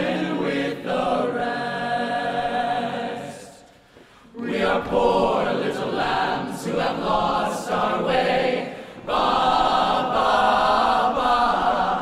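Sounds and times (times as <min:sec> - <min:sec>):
a cappella group singing in harmony: 0:00.0 - 0:12.0.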